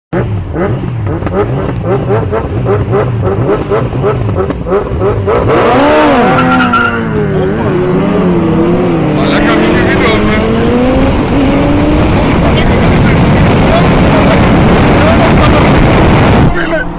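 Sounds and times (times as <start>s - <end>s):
wind and road noise: 0.1s - 16.9s
motorcycle engines revving hard: 0.2s - 16.8s.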